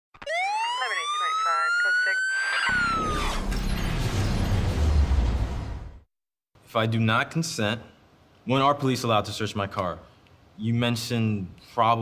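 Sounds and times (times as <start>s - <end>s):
siren wail: 0.2s - 3.8s
person speaking: 0.5s - 2.7s.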